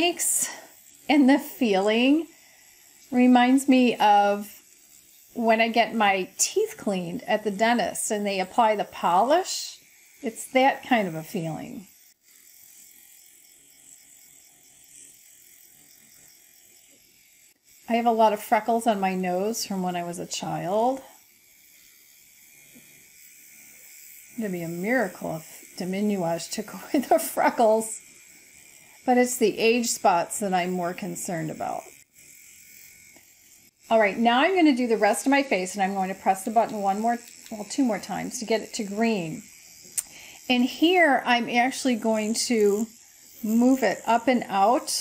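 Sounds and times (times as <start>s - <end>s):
faint buzz of microneedling pen: 0.0s - 45.0s.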